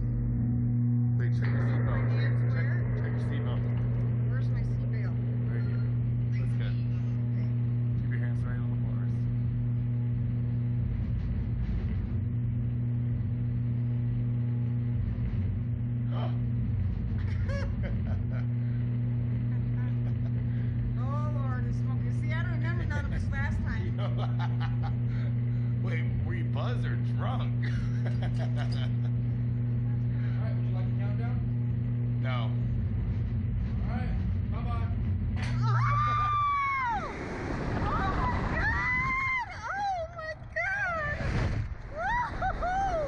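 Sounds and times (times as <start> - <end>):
loud low machinery hum: 0.0 - 43.0
people laughing: 17.2 - 18.8, 19.4 - 20.7, 24.0 - 25.3, 27.6 - 29.2.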